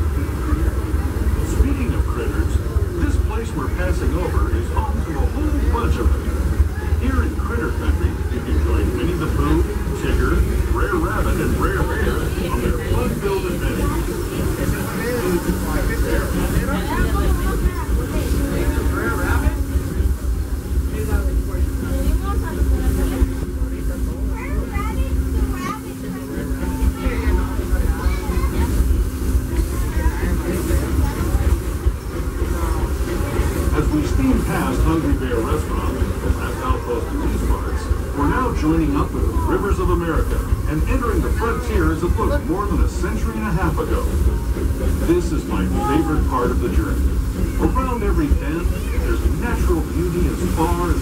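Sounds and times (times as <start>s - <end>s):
people chattering: 0.0s - 51.0s
train cars rumbling: 0.0s - 51.0s.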